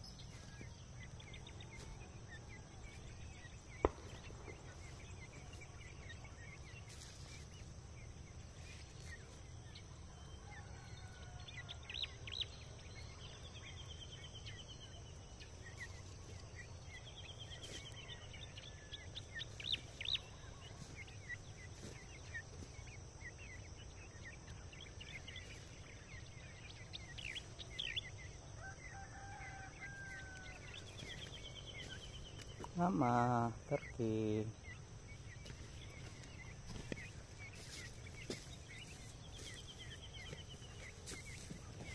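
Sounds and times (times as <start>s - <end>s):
birds chirping and trilling: 0.0s - 41.9s.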